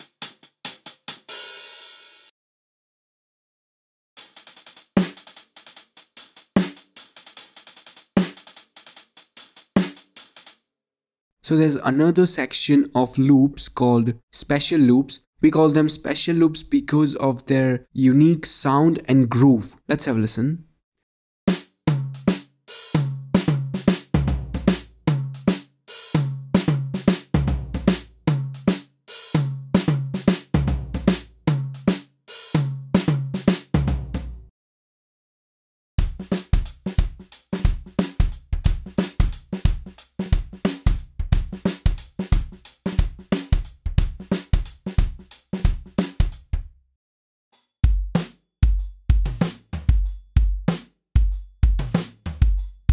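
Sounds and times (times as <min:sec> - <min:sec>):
drum kit groove: 0:00.0 - 0:02.3, 0:04.2 - 0:10.6, 0:21.5 - 0:34.5, 0:36.0 - 0:46.7, 0:47.6 - 0:52.9.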